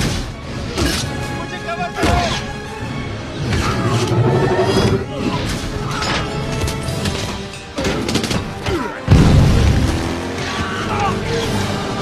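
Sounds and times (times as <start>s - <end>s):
action film score: 0.0s - 12.0s.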